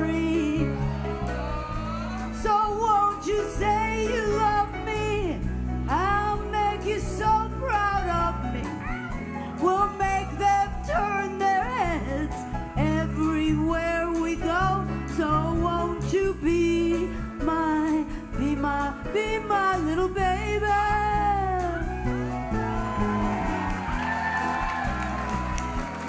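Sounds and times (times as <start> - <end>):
live band playing: 0.0 - 26.0
steady bass line: 0.0 - 26.0.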